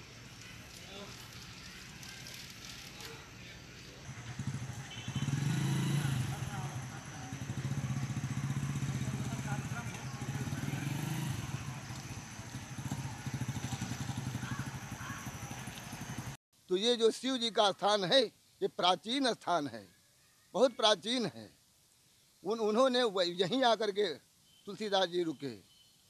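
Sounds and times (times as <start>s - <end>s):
small engine pulsing: 4.1s - 16.4s.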